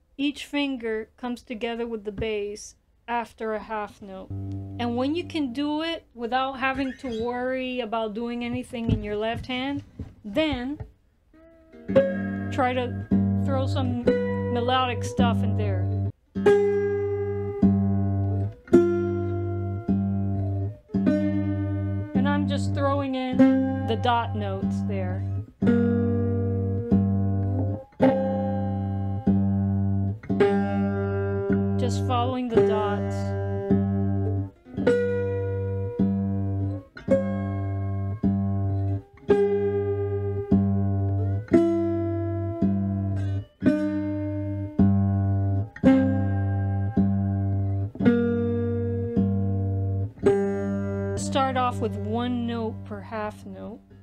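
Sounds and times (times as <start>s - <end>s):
slide guitar fingerpicked: 3.8s - 54.0s.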